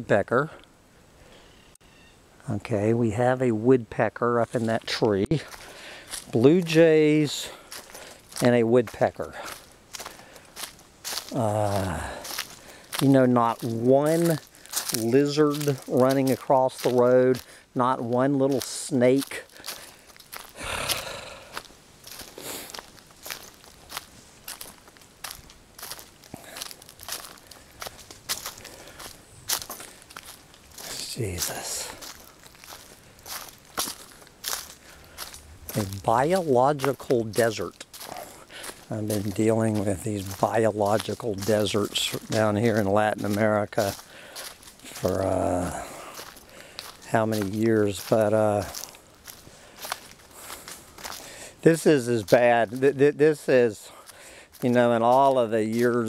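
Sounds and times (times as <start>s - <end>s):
footsteps scuffing on trail: 4.6s - 56.0s.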